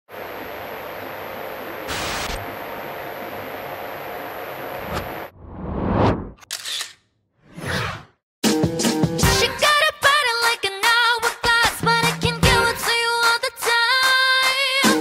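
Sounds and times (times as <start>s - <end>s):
television static hiss with whine: 0.1s - 4.9s
rising whooshes: 5.3s - 6.4s.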